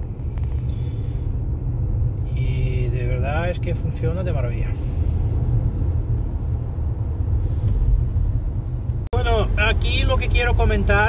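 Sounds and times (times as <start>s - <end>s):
road and tyre rumble in car: 0.0s - 11.0s.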